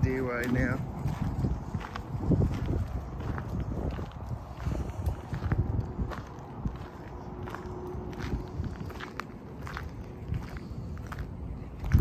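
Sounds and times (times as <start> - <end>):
footsteps crunching on gravel: 0.0 - 12.0
low rumble: 0.6 - 12.0.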